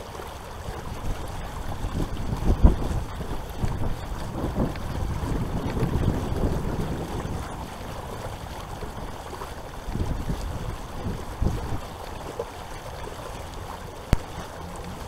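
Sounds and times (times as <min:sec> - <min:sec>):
water lapping against kayak hull: 0:00.0 - 0:15.0
wind buffeting microphone: 0:00.6 - 0:15.0.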